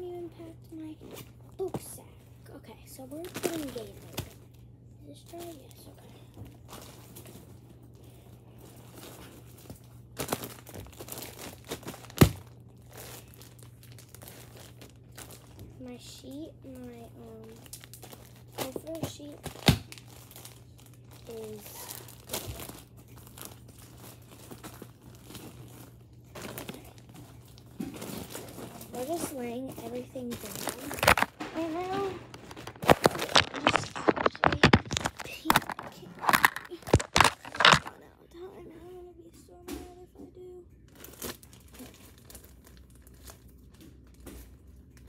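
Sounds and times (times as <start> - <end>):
plastic bags and clothes rustling: 2.9 - 38.5, 40.8 - 45.0.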